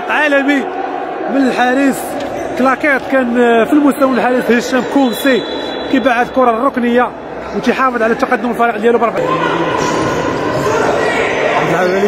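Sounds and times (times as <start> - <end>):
players' voices: 0.0 - 12.0.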